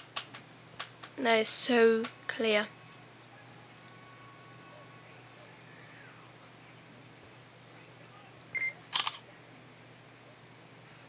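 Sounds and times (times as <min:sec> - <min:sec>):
phone camera beep: 0:08.6 - 0:09.2.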